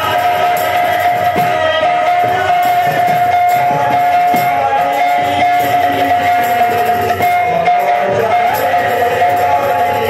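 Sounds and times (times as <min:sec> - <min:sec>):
hand drums beating: 0:00.0 - 0:10.0.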